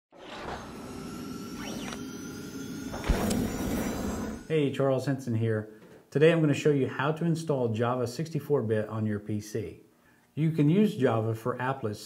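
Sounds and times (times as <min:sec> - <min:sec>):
rising and falling sweeps: 0:00.1 - 0:04.5
held electronic pad: 0:00.3 - 0:04.5.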